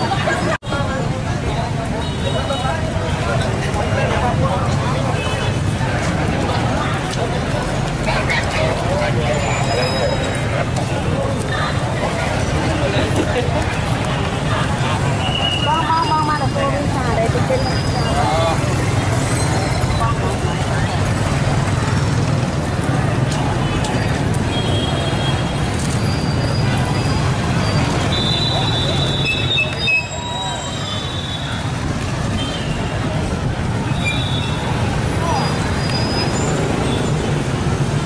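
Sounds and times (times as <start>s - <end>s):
crowd voices: 0.0s - 38.0s
motorbike traffic: 0.0s - 38.0s
steady low street rumble: 0.0s - 38.0s.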